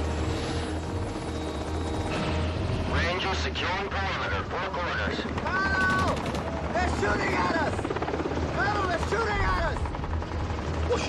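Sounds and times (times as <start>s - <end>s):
helicopter rotor drone: 0.0s - 11.0s.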